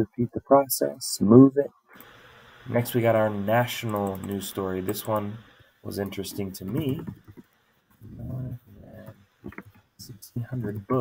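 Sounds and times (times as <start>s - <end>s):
keyboard clicks: 3.8s - 5.4s
man mumbling: 8.0s - 9.1s.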